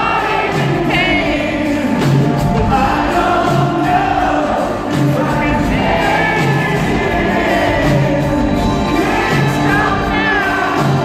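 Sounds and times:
lead singer singing: 0.0s - 11.0s
rock band with string orchestra: 0.0s - 11.0s.

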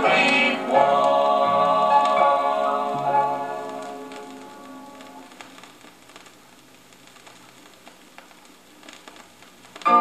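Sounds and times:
song ending: 0.0s - 5.2s
vinyl clicks and pops: 0.0s - 10.0s
vinyl surface hiss: 0.0s - 10.0s.

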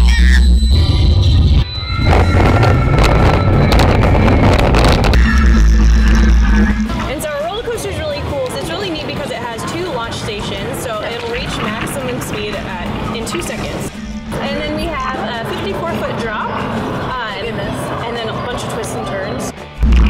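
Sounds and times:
background music: 0.8s - 20.0s
roller coaster rumble: 1.9s - 19.5s.

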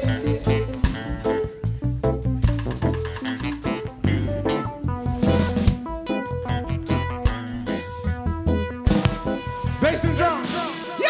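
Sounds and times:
electric guitar: 0.0s - 9.9s
bass guitar: 0.0s - 10.4s
keyboard: 0.0s - 11.0s
drum kit hits: 5.2s - 6.0s, 8.9s - 10.7s.

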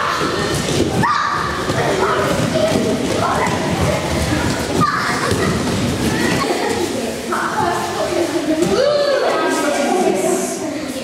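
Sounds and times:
children's voices echoing: 0.0s - 11.0s.

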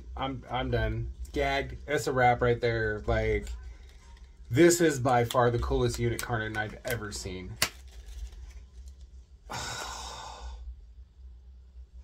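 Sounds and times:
man sighing: 9.5s - 10.6s.

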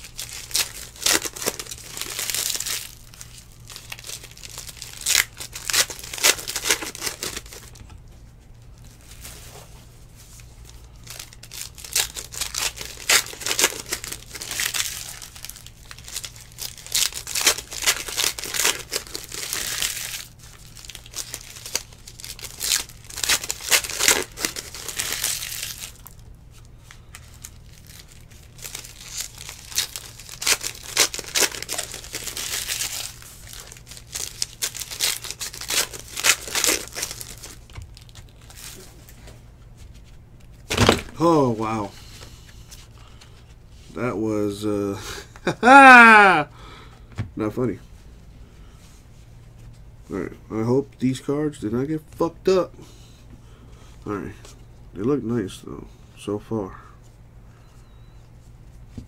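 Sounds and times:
wrappers crinkling and tearing: 0.0s - 7.8s, 8.6s - 43.9s, 44.5s - 46.4s
cardboard cards rustling: 8.7s - 43.5s.

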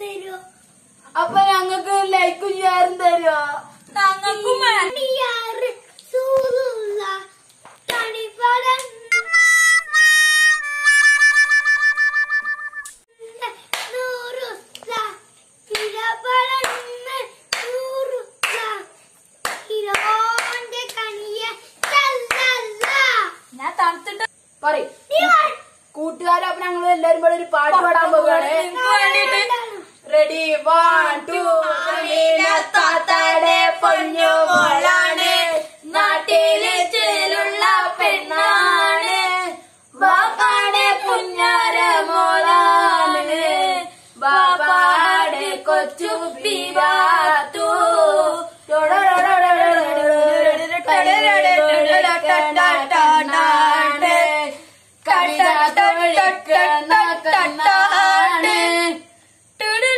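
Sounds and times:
children's high voices: 0.0s - 11.6s, 12.3s - 19.1s, 19.7s - 24.3s, 24.9s - 30.2s
hand claps: 7.6s - 8.1s, 8.7s - 9.0s, 13.7s - 14.0s, 15.7s - 16.0s, 16.6s - 17.8s, 18.4s - 18.8s, 19.4s - 21.1s, 21.8s - 23.0s
children singing: 28.2s - 59.0s.

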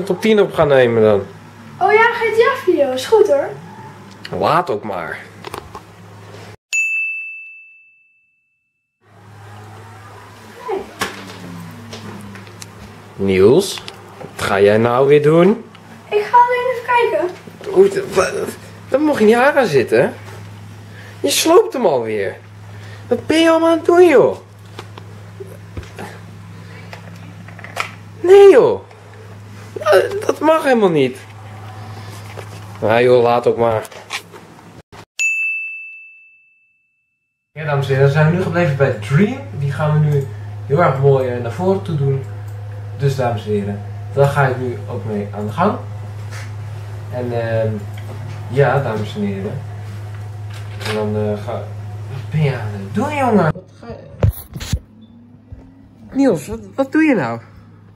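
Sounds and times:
bright bell-like ding: 6.7s - 8.5s, 35.2s - 37.0s.

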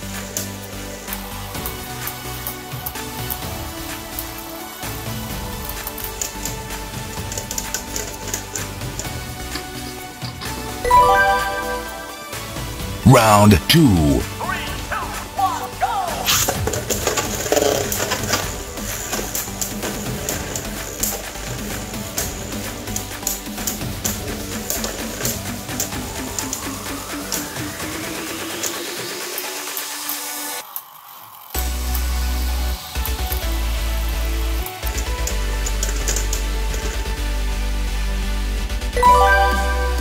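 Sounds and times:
background music: 0.0s - 16.4s, 38.9s - 40.0s.

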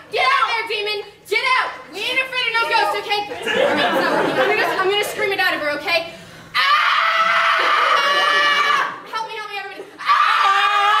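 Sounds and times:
high-pitched human scream: 6.6s - 9.0s, 10.0s - 11.0s.

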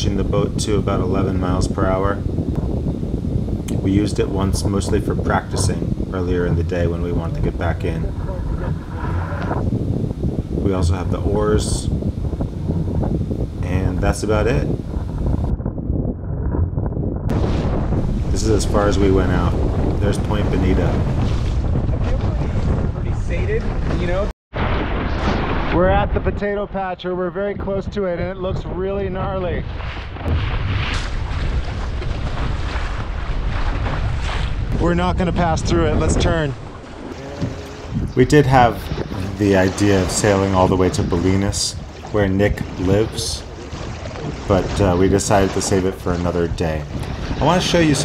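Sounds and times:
choppy waves washing: 0.0s - 15.5s, 17.3s - 26.6s, 28.7s - 48.0s
wind buffeting microphone: 0.0s - 48.0s
water rushing past hull: 16.5s - 26.7s, 29.3s - 48.0s.

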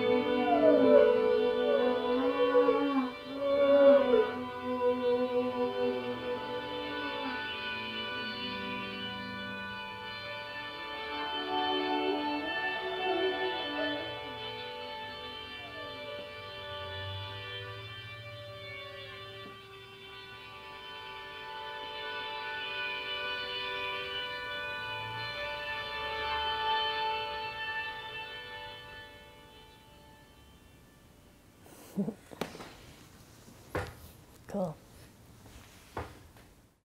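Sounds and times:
sliding notes: 0.0s - 32.1s
looped organ-like notes: 0.0s - 32.2s.

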